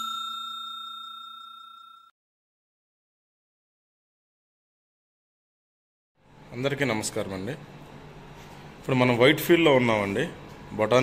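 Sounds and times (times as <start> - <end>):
bell chime tones: 0.0 - 2.2.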